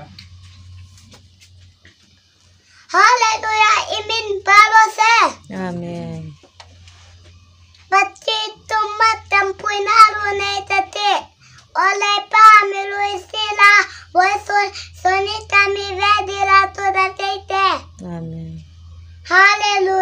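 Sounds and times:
boy chanting a prayer: 0:02.8 - 0:06.5, 0:07.9 - 0:18.6, 0:19.2 - 0:20.0.

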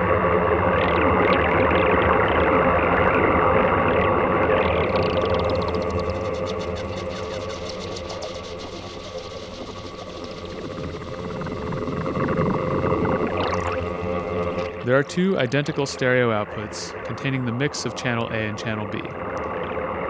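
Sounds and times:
synthesizer drone texture: 0:00.0 - 0:20.0
fluttering small ticks: 0:04.8 - 0:12.6.

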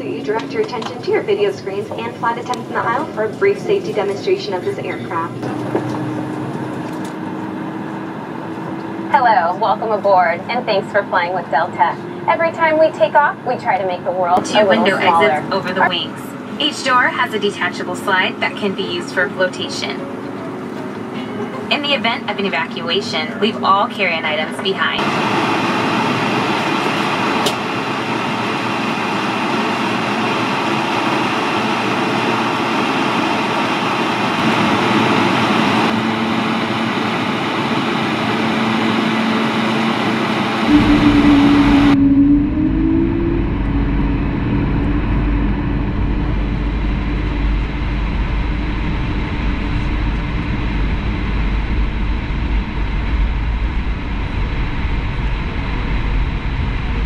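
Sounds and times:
low hum: 0:00.0 - 0:22.7, 0:24.9 - 0:57.0
jet engines rumbling in cabin: 0:00.0 - 0:57.0.

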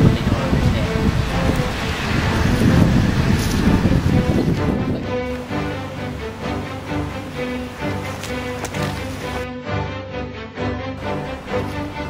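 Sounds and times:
wind buffeting microphone: 0:00.0 - 0:09.4
faint background music: 0:00.0 - 0:12.0.

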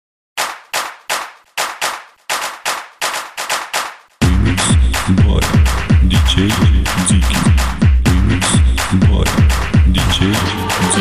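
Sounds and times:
sharp electronic percussive hits: 0:00.4 - 0:11.0.

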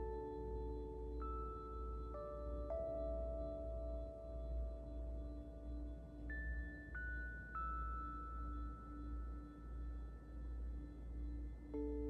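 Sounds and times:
soft pulsing drone: 0:00.0 - 0:12.0.

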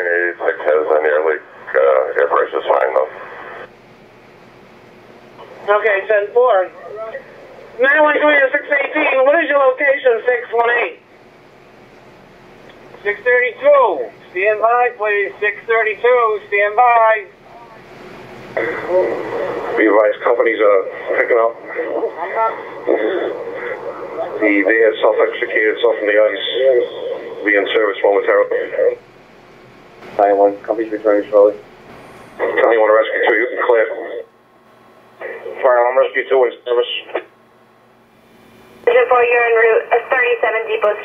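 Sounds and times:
radio voice transmission: 0:00.0 - 0:03.7, 0:05.4 - 0:11.0, 0:12.9 - 0:17.9, 0:18.5 - 0:29.0, 0:32.4 - 0:34.3, 0:35.2 - 0:37.3, 0:38.8 - 0:41.0
faint radio hiss: 0:00.0 - 0:41.0.

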